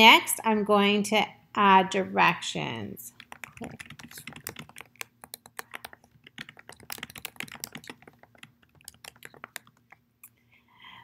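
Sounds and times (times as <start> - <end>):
keyboard typing clicks: 3.2 - 10.0.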